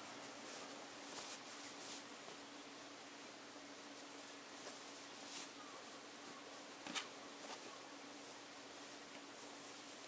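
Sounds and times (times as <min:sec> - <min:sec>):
fabric rustling: 0:00.0 - 0:02.4, 0:03.9 - 0:06.0
faint low hum: 0:00.0 - 0:10.0
steady hiss: 0:00.0 - 0:10.0.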